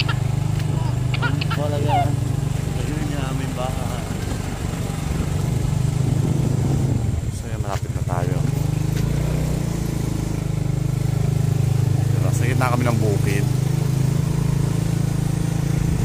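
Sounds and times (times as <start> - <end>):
small motorcycle engine running: 0.0 - 16.0.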